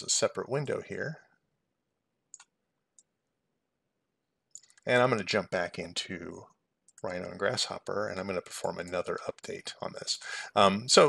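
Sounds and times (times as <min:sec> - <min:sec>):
computer mouse clicks: 0:02.3 - 0:03.1, 0:04.5 - 0:04.9.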